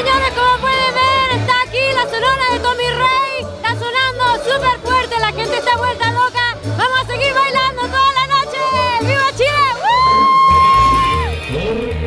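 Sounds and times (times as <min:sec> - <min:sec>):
bass beat: 0:00.0 - 0:12.0
cumbia band music: 0:00.0 - 0:12.0.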